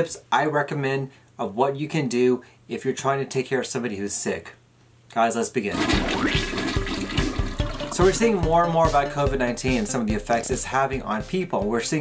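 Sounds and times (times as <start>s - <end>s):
toilet flush water rushing: 5.7s - 8.4s
low thumping beat: 6.2s - 12.0s.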